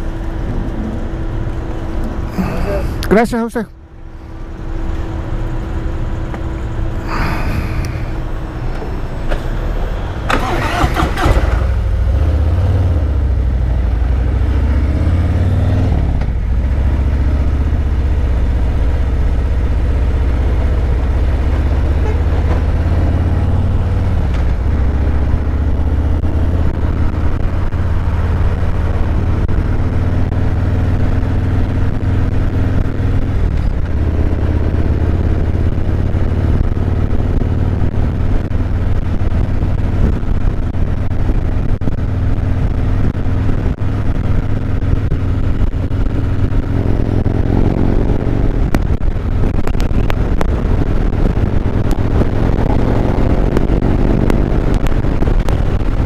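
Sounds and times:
motorcycle engine accelerating: 0.0 - 3.1, 9.8 - 56.0.

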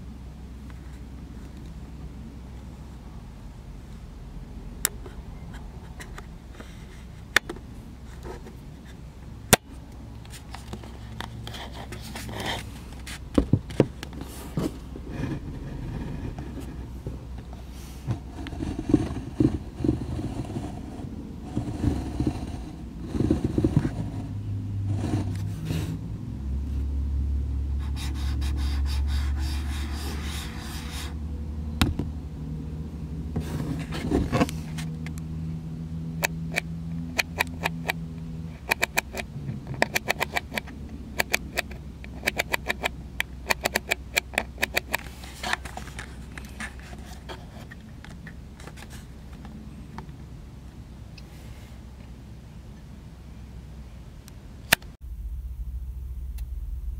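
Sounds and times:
steady low car hum: 0.0 - 56.9
camera dial clicking: 38.7 - 39.2
camera handling thumps and rubbing: 43.5 - 49.0.

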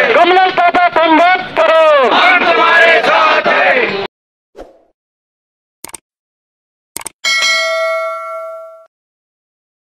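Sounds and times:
bright bell ding: 7.2 - 8.9.

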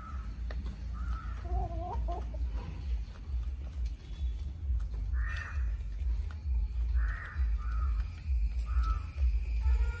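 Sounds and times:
harsh bird calls: 0.0 - 10.0
steady low rumble: 2.2 - 10.0.

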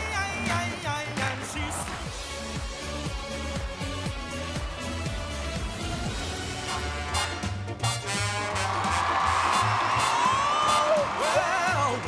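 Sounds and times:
swing music with bass beat: 0.0 - 12.0
audience cheering: 8.0 - 12.0
whoop rising in pitch: 8.6 - 11.5.

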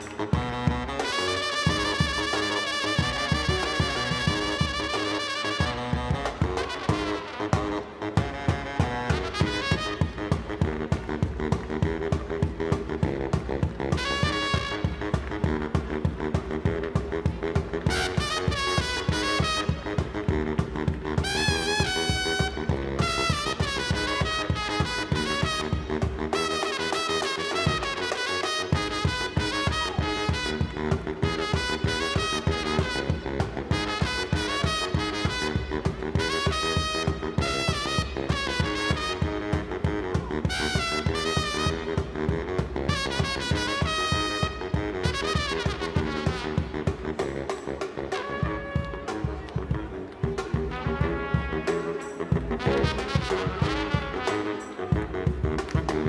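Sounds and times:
baritone saxophone: 0.0 - 56.0
brass and drums band playing: 0.0 - 56.0
trumpet phrases: 0.0 - 56.0.

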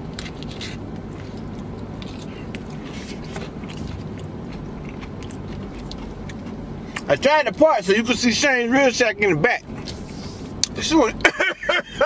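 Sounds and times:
person chewing food: 0.0 - 7.1
low hum inside car: 0.0 - 12.0.

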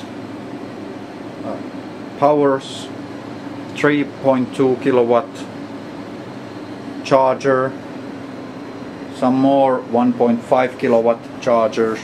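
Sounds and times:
cooling fans whirring: 0.0 - 12.0.

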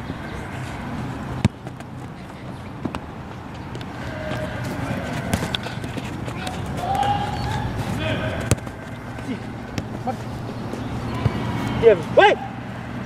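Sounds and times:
outdoor background noise: 0.0 - 13.0
football kicks: 1.4 - 2.2, 4.3 - 11.4
children calling out: 6.7 - 8.4.

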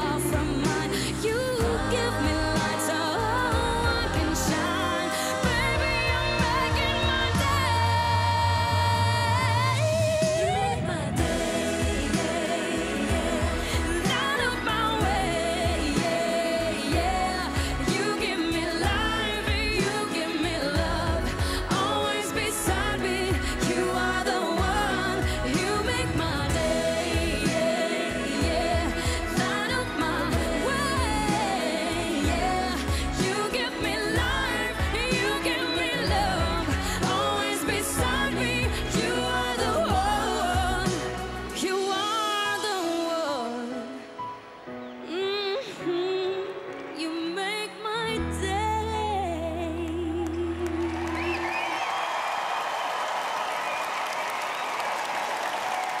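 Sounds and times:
band with steady drum beat: 0.0 - 7.8, 10.2 - 41.9
woman singing pop song: 0.0 - 44.2, 44.9 - 51.8
audience applauding and cheering: 49.9 - 56.0.

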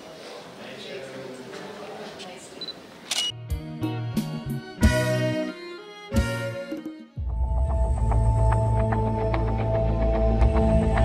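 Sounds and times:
murmur of voices in a room: 0.0 - 3.1
camera shutter clicks: 3.0 - 3.4
instrumental music with low notes: 3.4 - 11.0.

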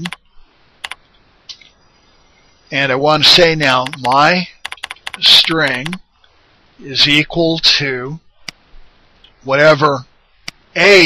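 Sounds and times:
computer keyboard keystrokes: 0.0 - 0.2, 3.8 - 6.0.

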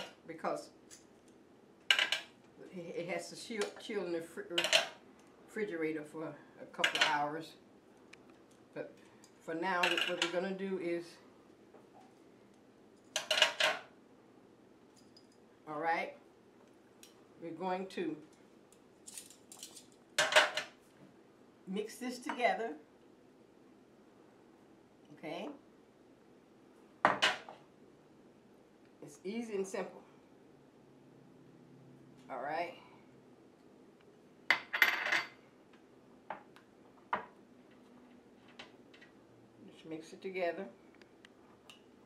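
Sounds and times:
metal tongs clinking: 19.0 - 20.4.

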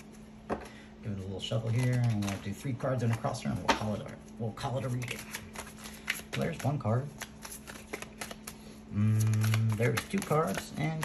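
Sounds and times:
cards being shuffled: 1.1 - 11.0.

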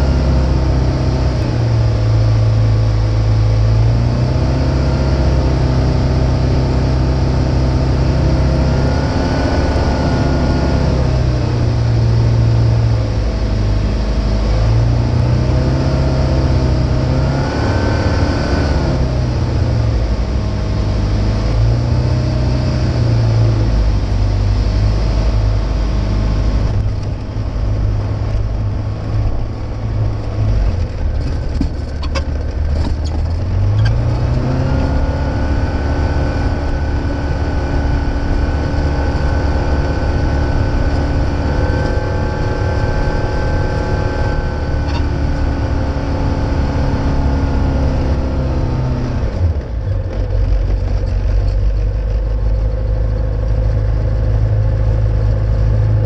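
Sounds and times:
light aircraft propeller engine: 0.0 - 56.0.

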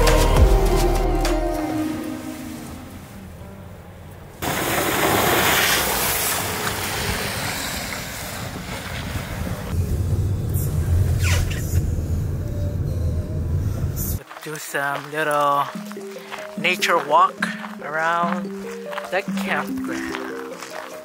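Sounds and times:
road rumble: 2.6 - 18.5
tyres hissing on wet road: 4.4 - 9.8.

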